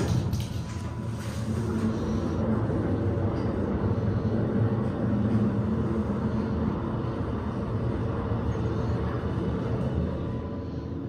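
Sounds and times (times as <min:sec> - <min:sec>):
elevator hum and rumble: 0:00.0 - 0:11.0.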